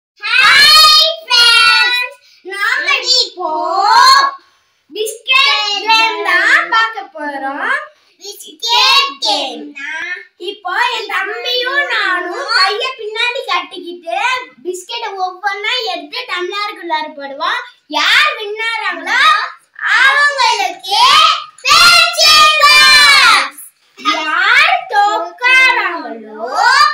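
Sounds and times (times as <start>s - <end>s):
children chanting sung phrases: 0.2s - 2.2s, 19.1s - 24.3s
child speaking: 0.2s - 26.9s.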